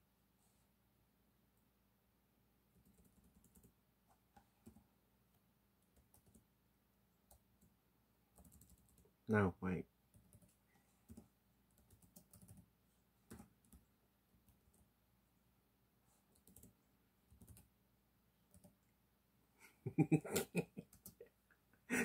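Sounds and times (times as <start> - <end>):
faint keyboard typing: 2.7 - 6.5, 7.2 - 9.2, 10.1 - 15.0, 16.1 - 17.8, 18.4 - 19.0, 20.0 - 21.4.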